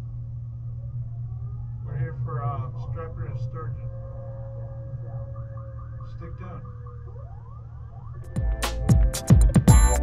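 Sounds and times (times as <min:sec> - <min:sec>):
music with chirp-like notes: 0:03.8 - 0:10.0.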